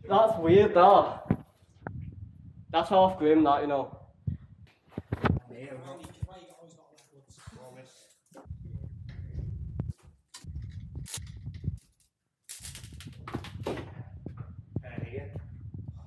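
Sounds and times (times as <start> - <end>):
low rumbling microphone handling noise: 0.0 - 5.4, 8.4 - 11.9, 12.9 - 16.0.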